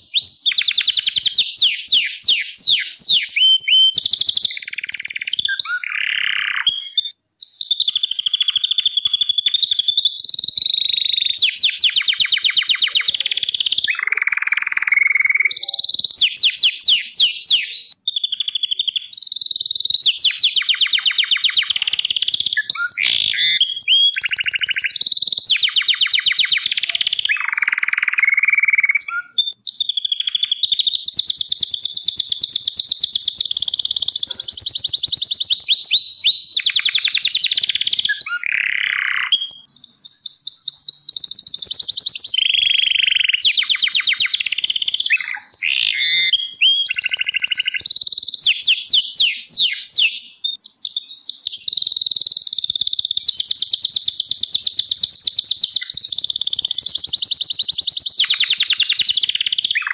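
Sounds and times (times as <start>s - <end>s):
canary singing trills: 0.0s - 59.9s.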